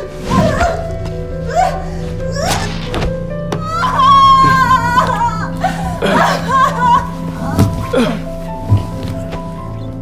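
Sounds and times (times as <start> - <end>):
woman screaming: 3.6 - 7.2
woman crying out: 3.6 - 8.2.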